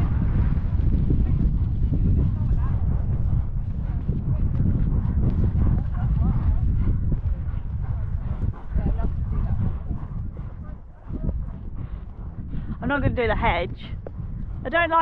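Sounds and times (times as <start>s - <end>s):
muffled hoofbeats on grass: 0.0s - 15.0s
wind rumbling on microphone: 0.0s - 15.0s.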